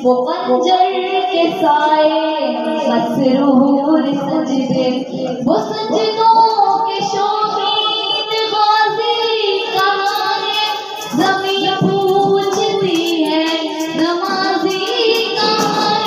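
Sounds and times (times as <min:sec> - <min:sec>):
child singing devotional song: 0:00.0 - 0:16.0.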